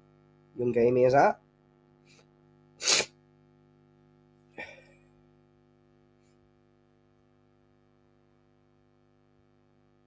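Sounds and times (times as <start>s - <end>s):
man sneezing: 2.8s - 3.2s.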